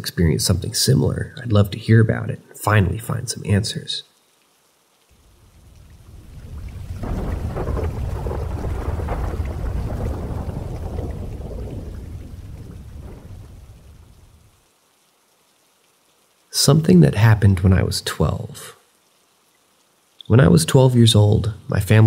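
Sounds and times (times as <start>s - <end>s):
rolling thunder: 5.4s - 14.5s.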